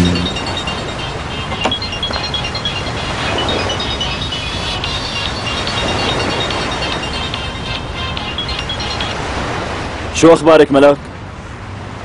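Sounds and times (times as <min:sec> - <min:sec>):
soft background music: 0:00.0 - 0:10.1.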